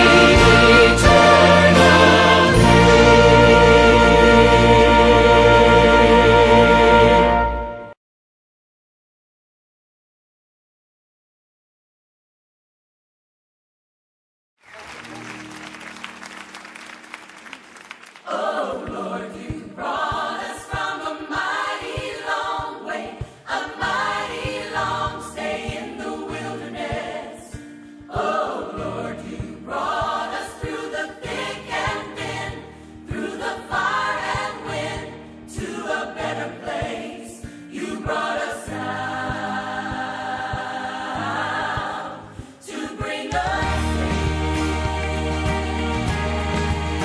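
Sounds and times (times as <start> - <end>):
bass accompaniment: 0.0 - 8.0, 37.8 - 47.0
choir singing gospel song: 0.0 - 8.0, 18.2 - 47.0.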